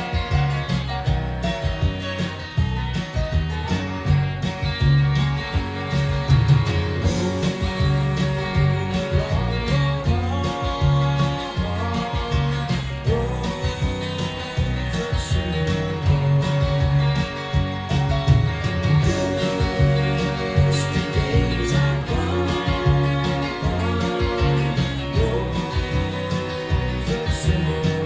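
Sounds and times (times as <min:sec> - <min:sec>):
bass line: 0:00.0 - 0:28.0
electric guitar playing country-rock: 0:00.0 - 0:28.0.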